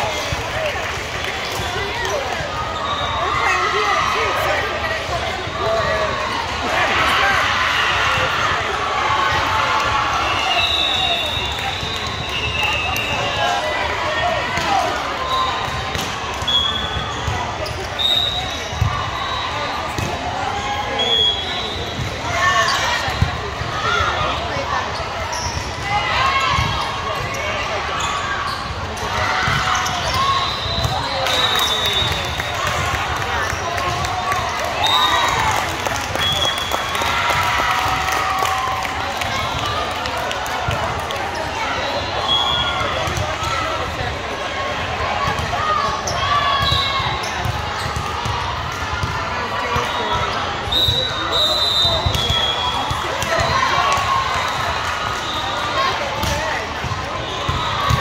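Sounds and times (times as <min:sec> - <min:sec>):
players calling and shouting: 0:00.0 - 0:58.0
spectators chatting: 0:00.0 - 0:58.0
people clapping: 0:31.2 - 0:41.4.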